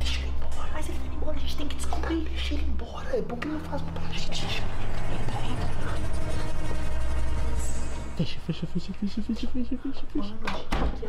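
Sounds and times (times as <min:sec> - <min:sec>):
loud low drone: 0:03.6 - 0:10.2.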